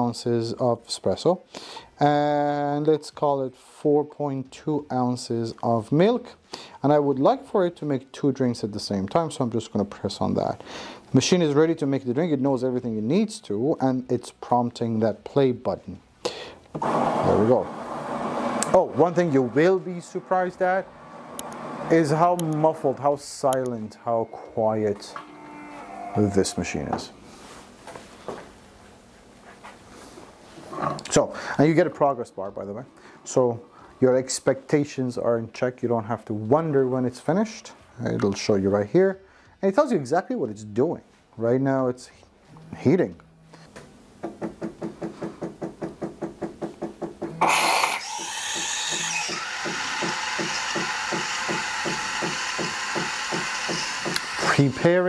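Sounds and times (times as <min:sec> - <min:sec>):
espresso machine humming: 0:16.8 - 0:19.6, 0:20.2 - 0:22.3, 0:49.1 - 0:54.5
milk frothing hiss: 0:47.4 - 0:54.8.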